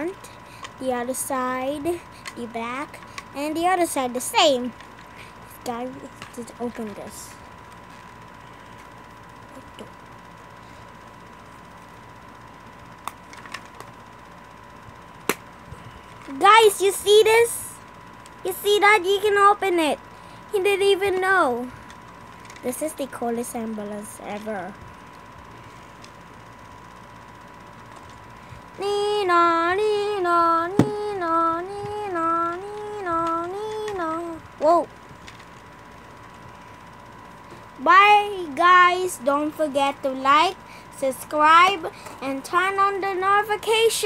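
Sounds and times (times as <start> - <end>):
faint high hum: 0.0 - 44.0
thin high whine: 0.0 - 44.0.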